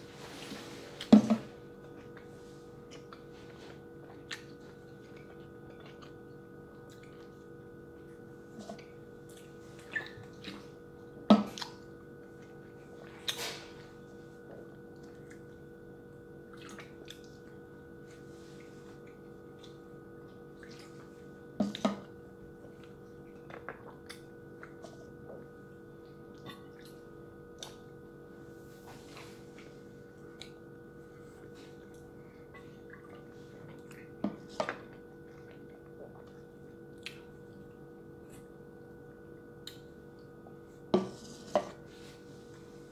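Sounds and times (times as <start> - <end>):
room hum: 0.0 - 42.9.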